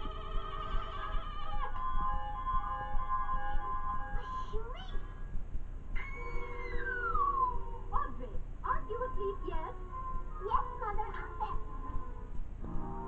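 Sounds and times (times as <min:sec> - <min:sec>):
short upward squeal: 0:06.0 - 0:07.6.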